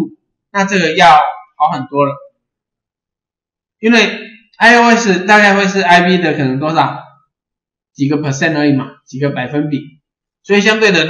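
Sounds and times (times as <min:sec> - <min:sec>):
man lecturing: 0:00.0 - 0:02.2, 0:03.8 - 0:07.1, 0:08.0 - 0:09.8, 0:10.5 - 0:11.0.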